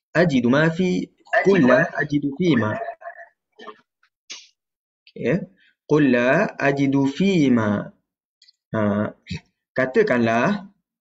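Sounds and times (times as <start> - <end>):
man murmuring over video call: 0.2 - 4.5, 5.1 - 10.8.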